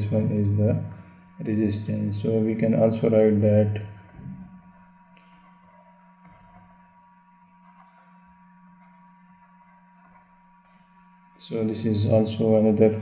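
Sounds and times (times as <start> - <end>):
faint electrical hum: 0.0 - 13.0.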